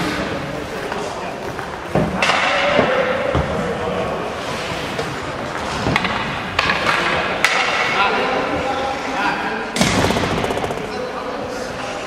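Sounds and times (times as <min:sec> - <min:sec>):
players' voices: 0:06.3 - 0:12.0.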